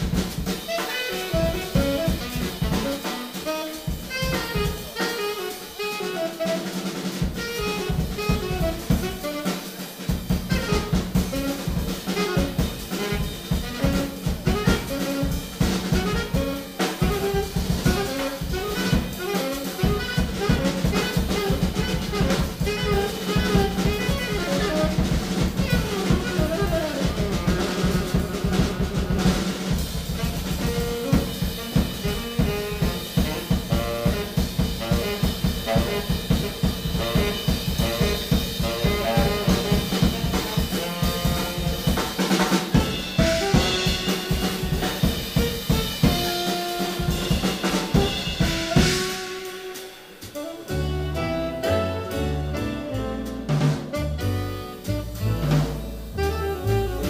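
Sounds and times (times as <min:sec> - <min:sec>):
walking double bass: 0:00.0 - 0:04.8, 0:10.2 - 0:49.6, 0:50.2 - 0:57.0
drum kit snare and rimshots: 0:00.0 - 0:57.0
jazz quartet playing: 0:00.0 - 0:57.0
saxophone lines: 0:00.4 - 0:09.6, 0:10.6 - 0:57.0.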